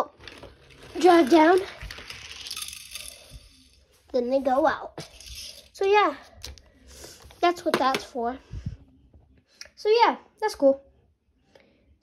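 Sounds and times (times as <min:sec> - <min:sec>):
toy car rolling on plastic track: 0:00.0 - 0:03.8, 0:05.0 - 0:05.8.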